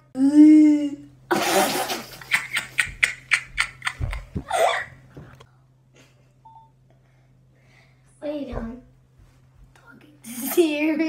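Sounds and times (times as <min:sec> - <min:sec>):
girl laughing: 0:01.3 - 0:05.1.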